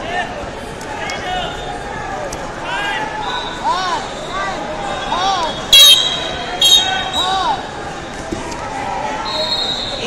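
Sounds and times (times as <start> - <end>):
high referee's whistle: 5.5 - 7.5, 9.2 - 10.0.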